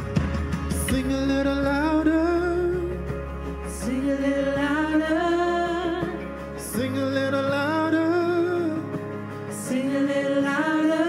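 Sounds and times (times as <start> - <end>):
band sustained chords: 0.0 - 11.0
man singing: 0.7 - 11.0.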